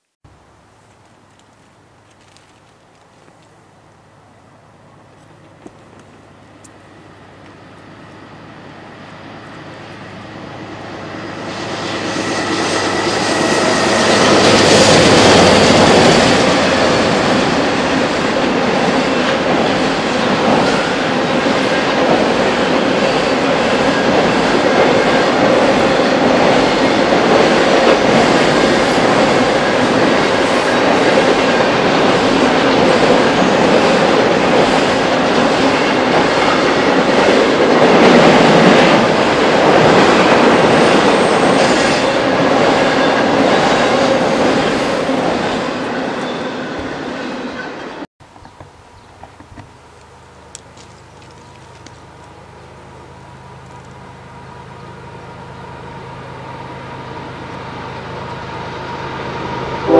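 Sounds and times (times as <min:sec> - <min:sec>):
freight train on steel bridge: 0:00.3 - 0:59.9.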